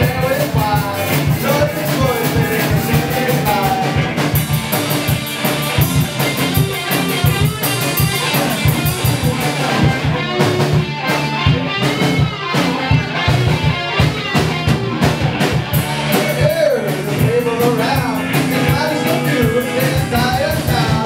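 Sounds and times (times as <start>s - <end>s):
bass guitar: 0.0s - 21.0s
drum kit beat: 0.0s - 21.0s
electric guitars: 0.0s - 21.0s.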